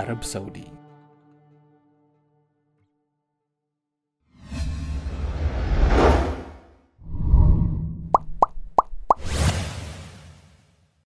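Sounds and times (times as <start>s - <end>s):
whoosh: 4.4s - 8.4s
pop sound effects: 8.1s - 9.4s.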